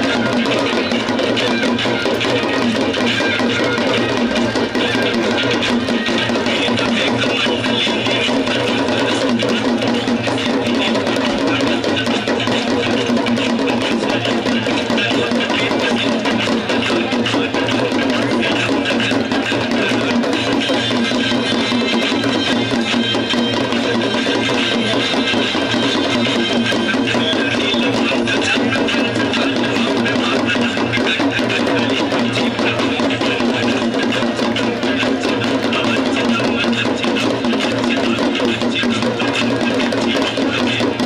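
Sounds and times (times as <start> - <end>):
drumming and percussion: 0.0 - 41.0.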